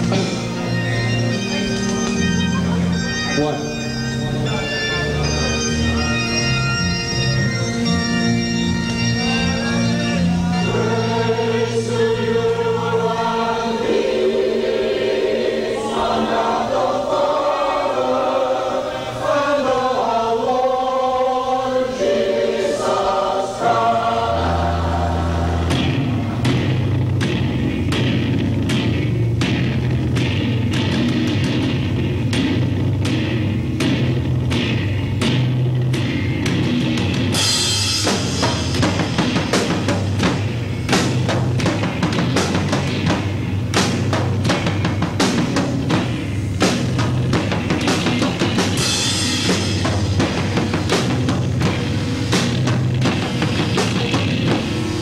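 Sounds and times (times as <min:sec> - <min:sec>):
drums and crashing cymbals: 0:00.0 - 0:01.9, 0:25.2 - 0:55.0
heavy rock band playing: 0:00.0 - 0:14.1, 0:23.6 - 0:55.0
organ chords: 0:00.0 - 0:55.0.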